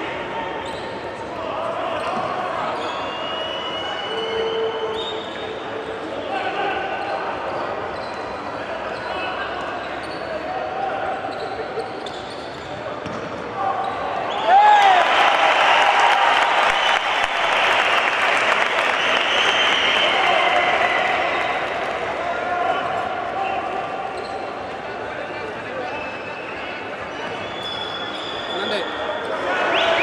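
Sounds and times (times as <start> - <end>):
arena crowd chatter: 0.0 - 30.0
sneaker squeaks: 0.6 - 6.1, 7.0 - 14.4, 22.8 - 24.8, 25.8 - 29.9.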